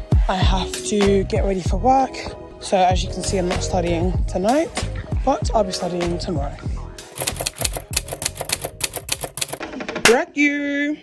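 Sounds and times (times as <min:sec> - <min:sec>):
faint background music: 0:00.0 - 0:11.0
keyboard typing clicks: 0:07.2 - 0:09.6.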